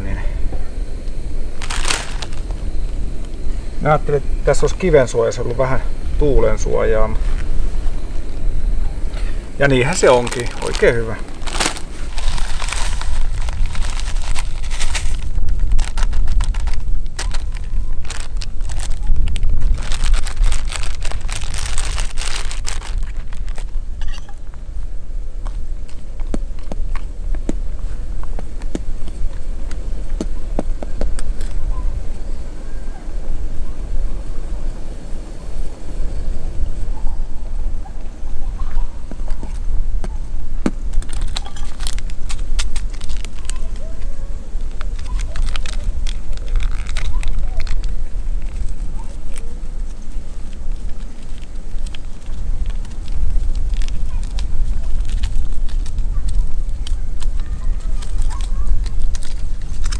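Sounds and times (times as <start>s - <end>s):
wind buffeting microphone: 0.3s - 59.9s
food packaging rustling: 1.6s - 3.0s, 9.6s - 23.8s, 40.9s - 44.0s, 44.6s - 59.9s.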